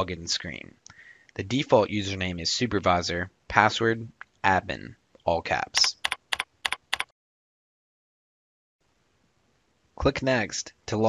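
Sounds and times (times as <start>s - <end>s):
computer keyboard keystrokes: 5.8s - 7.1s.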